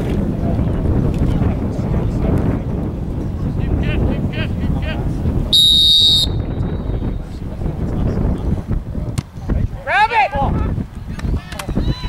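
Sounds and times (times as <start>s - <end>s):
wind rumble on microphone: 0.0s - 12.0s
referee's whistle: 5.5s - 7.0s.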